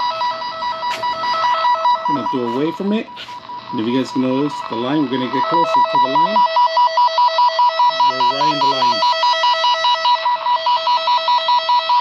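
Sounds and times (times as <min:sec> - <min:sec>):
two-tone beeping warble: 0:00.0 - 0:12.0.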